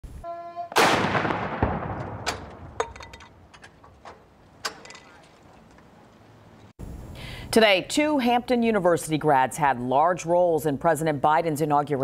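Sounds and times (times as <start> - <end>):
cannon blast with rolling echo: 0.7 - 3.5.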